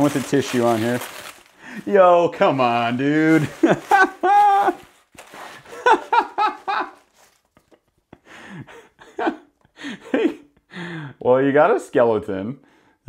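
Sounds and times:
man laughing: 0:03.0 - 0:10.7.

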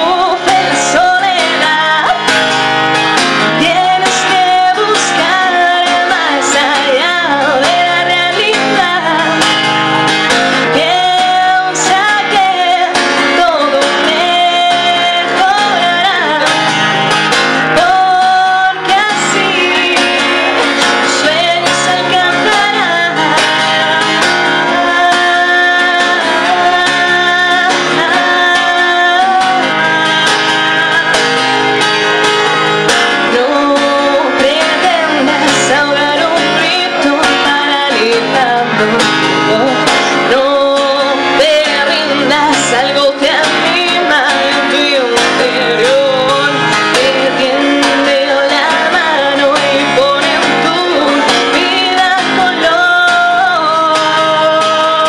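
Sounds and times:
strummed acoustic guitar: 0:00.0 - 0:55.0
woman singing: 0:00.0 - 0:55.0.

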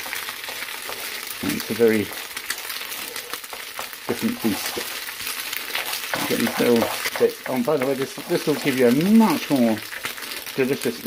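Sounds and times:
egg sizzling and crackling: 0:00.0 - 0:11.0
wooden spatula scraping pan: 0:00.4 - 0:10.5.

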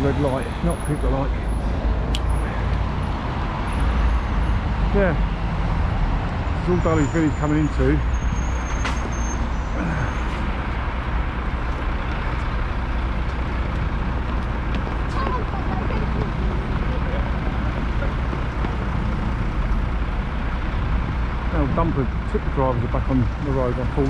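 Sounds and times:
lorry engine: 0:00.0 - 0:24.0
road traffic: 0:00.0 - 0:24.0.

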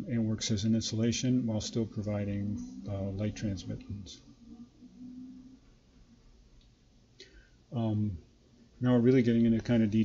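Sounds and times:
faint low hum: 0:00.0 - 0:10.0
soft steady hiss: 0:00.0 - 0:10.0.

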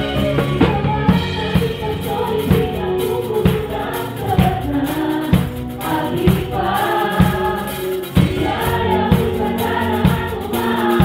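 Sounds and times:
drum kit playing steady beat: 0:00.0 - 0:11.0
group of singers singing: 0:00.0 - 0:11.0.

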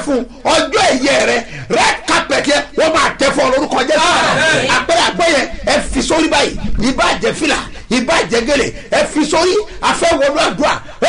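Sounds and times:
man speaking animatedly: 0:00.0 - 0:11.0.

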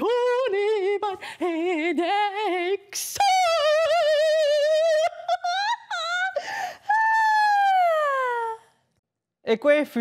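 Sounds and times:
woman singing: 0:00.0 - 0:08.7.

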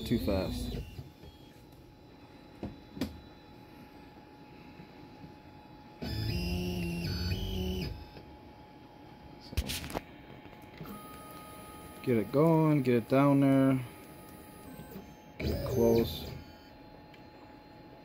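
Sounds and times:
stepper motors whining: 0:13.2 - 0:16.8.

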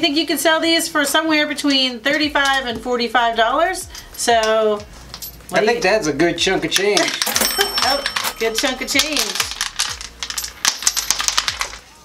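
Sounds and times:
coins clinking into piggy bank: 0:03.8 - 0:05.5, 0:06.7 - 0:11.8.

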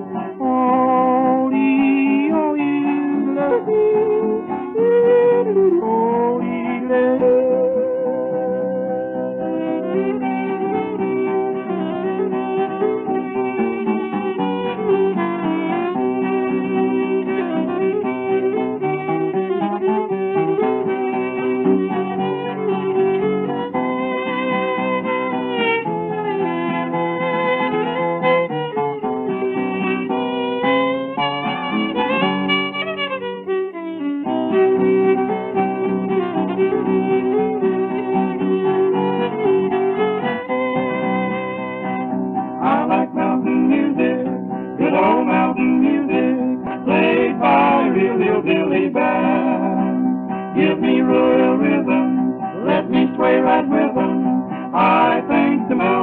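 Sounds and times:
strummed acoustic guitar: 0:00.0 - 0:33.2, 0:34.2 - 0:56.0
fiddle melody: 0:00.0 - 0:56.0.

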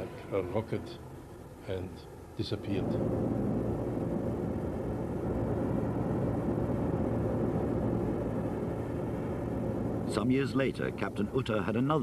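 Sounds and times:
jet engine drone: 0:00.0 - 0:12.0.

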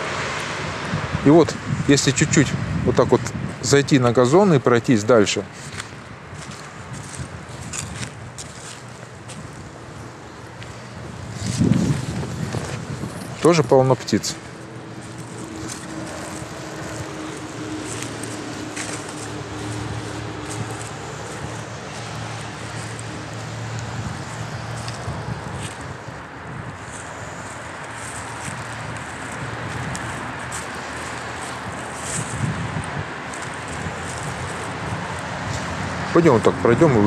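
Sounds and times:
wind on microphone: 0:00.0 - 0:03.8, 0:05.6 - 0:13.5, 0:14.4 - 0:36.1
road traffic: 0:00.0 - 0:37.0.

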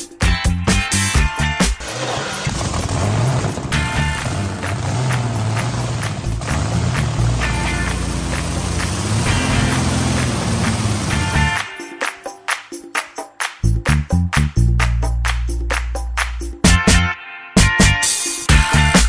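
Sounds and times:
background music: 0:00.0 - 0:19.0
engine low rumble: 0:02.5 - 0:11.6.

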